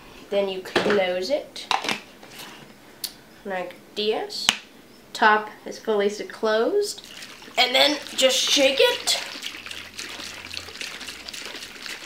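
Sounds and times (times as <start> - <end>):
water sloshing in shaker cup: 6.9 - 12.0.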